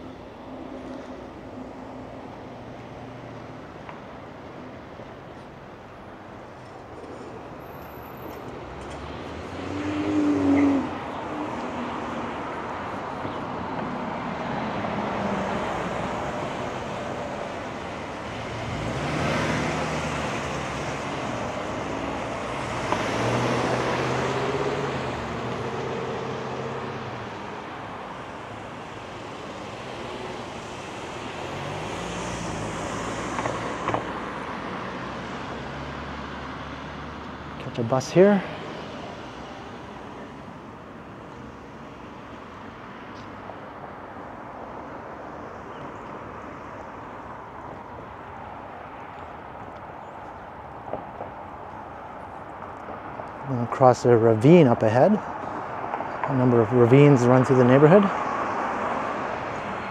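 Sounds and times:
cars driving past: 0.0 - 59.9.

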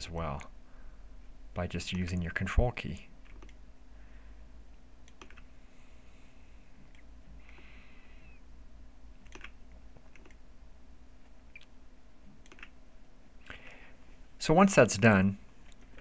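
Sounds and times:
low steady hum: 0.0 - 16.0
computer mouse clicks: 3.2 - 3.6, 5.0 - 5.5, 6.8 - 7.7, 9.2 - 10.4, 12.4 - 12.8
keyboard key presses: 5.1 - 5.5, 9.2 - 10.4, 12.4 - 12.8.

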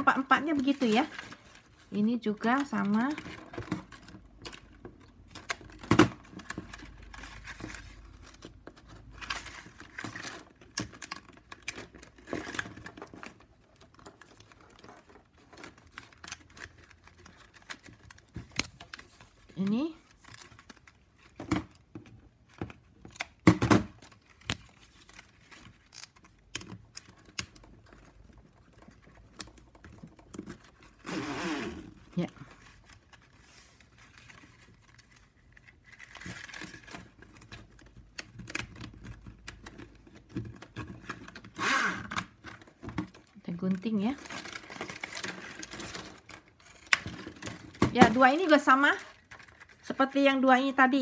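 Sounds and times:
plastic strips clicking and rubbing: 0.1 - 31.1, 31.9 - 50.5.

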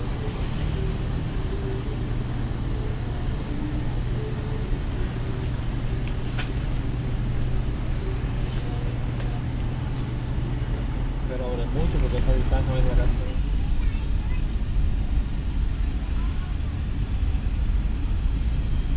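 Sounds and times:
steady low rumble: 0.0 - 18.9.

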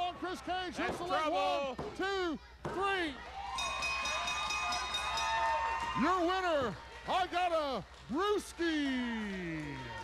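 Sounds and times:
ring bell struck rapidly: 3.6 - 5.4.

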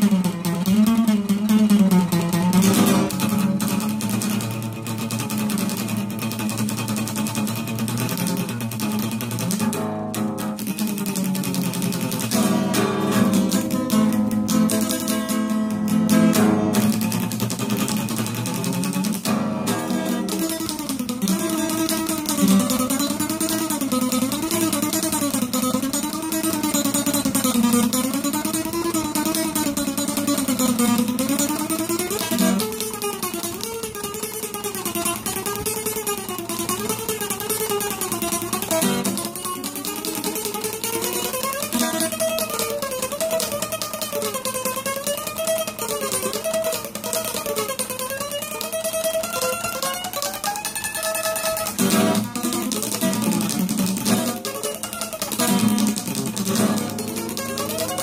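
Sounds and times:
acoustic guitar tremolo picking: 0.0 - 58.0
strummed guitar chords: 0.0 - 58.0.

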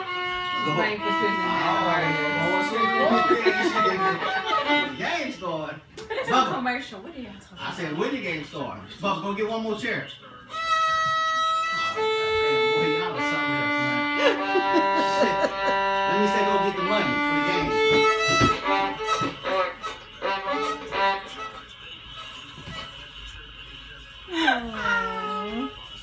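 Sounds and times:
violin playing held notes: 0.0 - 5.4, 10.5 - 21.7.

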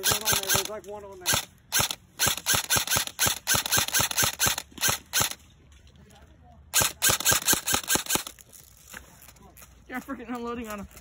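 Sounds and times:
airsoft gun rapid fire: 0.0 - 5.4, 6.7 - 8.4.

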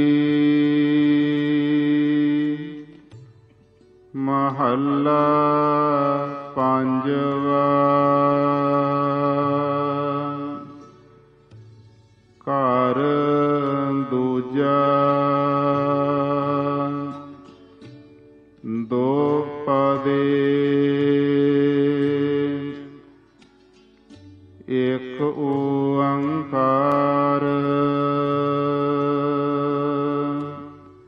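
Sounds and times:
man chanting: 4.2 - 10.9, 12.5 - 17.4, 24.7 - 31.0.

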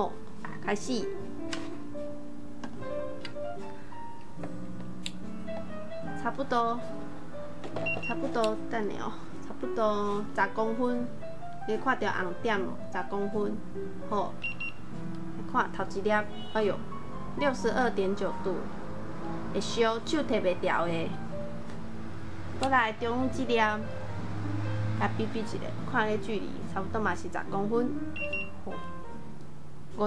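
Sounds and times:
background music with voice: 0.0 - 2.2, 5.1 - 7.2, 8.0 - 14.5, 15.2 - 28.2
person talking: 6.2 - 6.9, 8.1 - 11.1, 11.7 - 14.4, 17.4 - 18.7, 19.6 - 21.2, 22.6 - 23.8, 25.0 - 28.0
thermometer beeps: 7.8 - 8.2, 14.4 - 14.8, 28.2 - 28.6.

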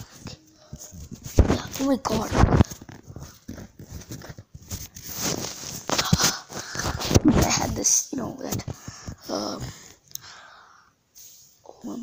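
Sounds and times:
phone brushing against shirt: 0.0 - 7.8.

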